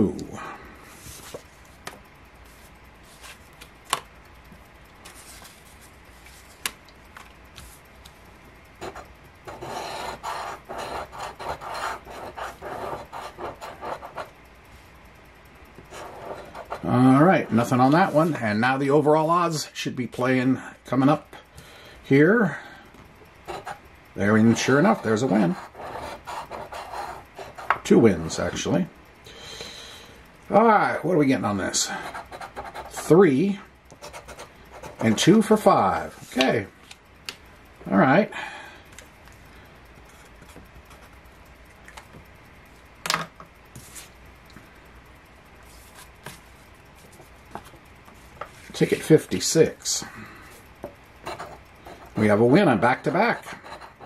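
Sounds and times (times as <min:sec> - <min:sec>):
coin scratching lottery ticket: 0:08.8 - 0:14.3, 0:15.9 - 0:18.2, 0:23.5 - 0:27.7, 0:31.8 - 0:33.2, 0:34.0 - 0:35.4, 0:51.2 - 0:52.4, 0:53.0 - 0:54.0.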